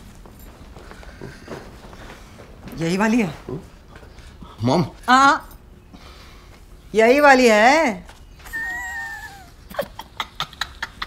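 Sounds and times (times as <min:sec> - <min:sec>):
person whining high-pitched: 0:08.5 - 0:09.5.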